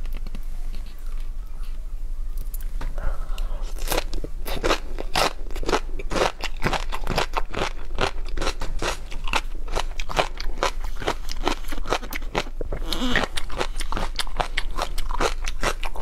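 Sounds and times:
crunchy chewing: 3.4 - 16.0.

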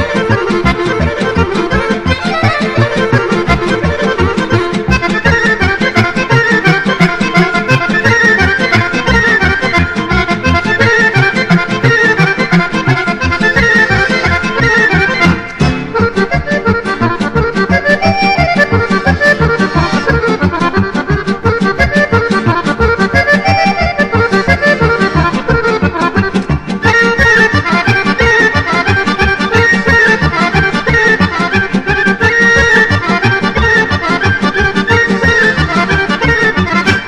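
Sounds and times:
accordion dance tune: 0.0 - 37.0.

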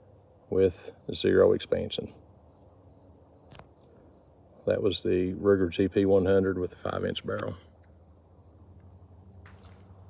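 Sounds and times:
insects chirping: 0.5 - 10.0.

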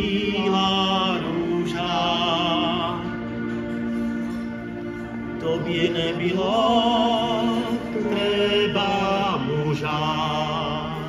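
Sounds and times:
two men singing folk song: 5.4 - 11.0.

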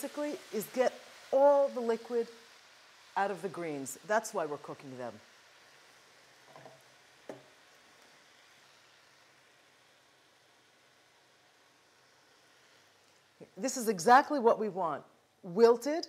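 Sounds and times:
greens sizzling in oil: 0.0 - 16.0.

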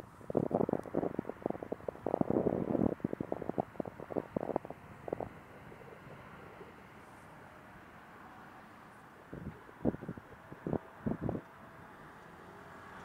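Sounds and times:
wind buffeting microphone: 0.0 - 7.0, 9.1 - 11.6
faint steady hiss: 0.0 - 13.0.

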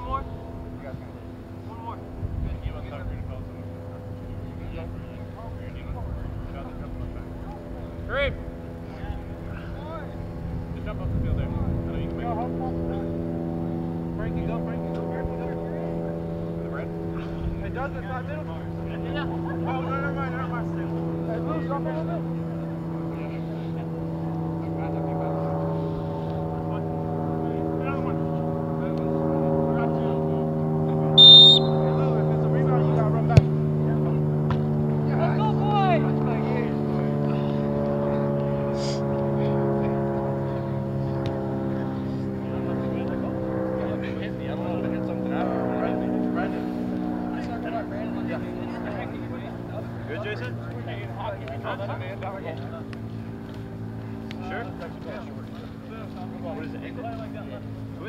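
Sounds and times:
engine-like drone: 0.0 - 58.0
faint distant shouts: 31.1 - 32.4
referee's whistle blast: 31.2 - 32.0.

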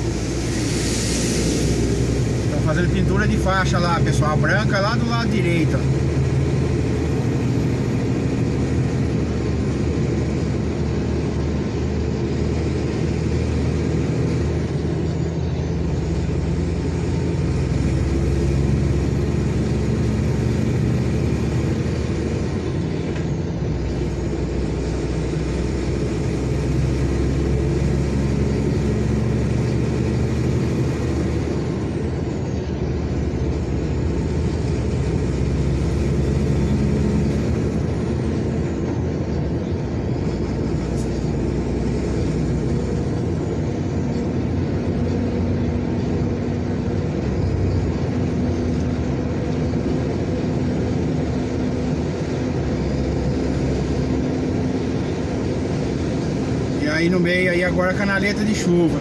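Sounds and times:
road noise: 0.0 - 59.0
truck engine drone: 0.0 - 59.0.

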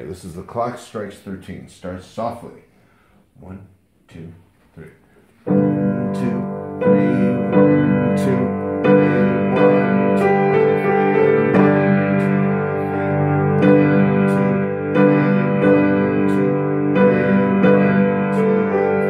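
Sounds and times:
piano chords: 5.4 - 19.0.

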